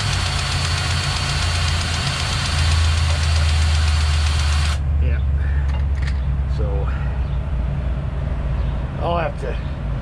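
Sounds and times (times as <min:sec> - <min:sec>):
grease gun motor running: 0:00.0 - 0:04.8
truck engine idling: 0:00.0 - 0:04.8.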